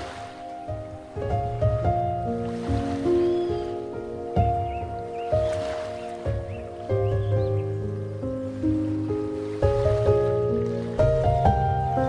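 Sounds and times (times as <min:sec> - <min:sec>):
gentle solo piano music: 0:00.0 - 0:12.0
ocean waves: 0:00.0 - 0:12.0
high bird calls: 0:03.0 - 0:08.3.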